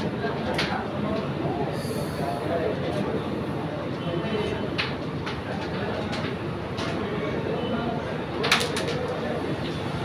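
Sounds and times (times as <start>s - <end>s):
low voices murmuring: 0.0s - 10.0s.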